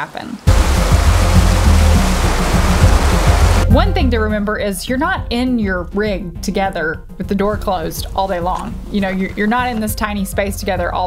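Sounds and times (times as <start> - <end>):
creek water rushing over rocks: 0.5 - 3.7
background music with bass line: 0.5 - 11.0.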